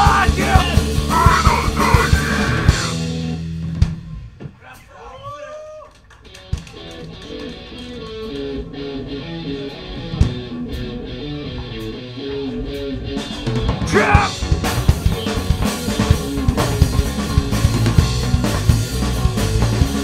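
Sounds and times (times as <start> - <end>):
punk band playing loudly: 0.0 - 4.2, 6.6 - 20.0
electric guitar picked riff: 6.9 - 20.0
drum hits: 13.8 - 20.0.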